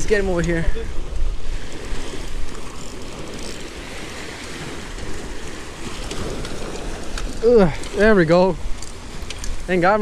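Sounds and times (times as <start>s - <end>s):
surf splashing against rocks: 0.0s - 10.0s
wind buffeting microphone: 0.0s - 10.0s.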